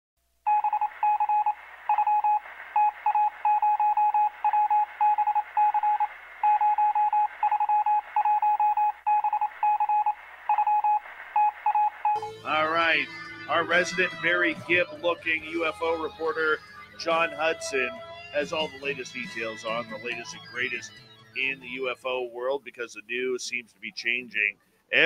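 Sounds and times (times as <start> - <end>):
electronic beeps: 0.5 - 22.1.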